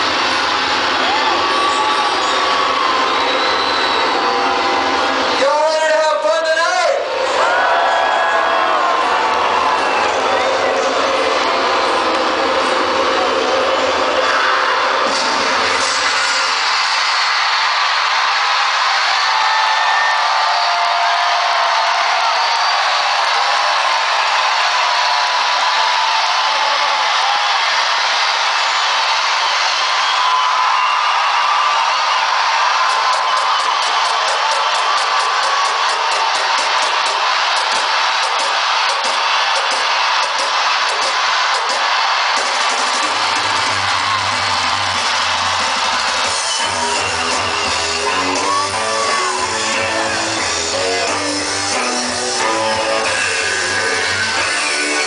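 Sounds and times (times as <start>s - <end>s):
crowd cheering and whooping: 0.0s - 55.0s
dance music over loudspeakers: 0.0s - 55.0s.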